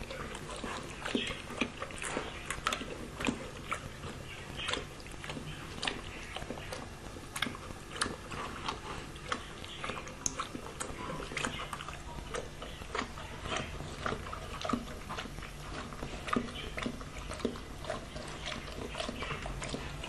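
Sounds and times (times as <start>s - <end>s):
dog lapping water: 0.0s - 20.0s
low steady hum: 0.0s - 20.0s.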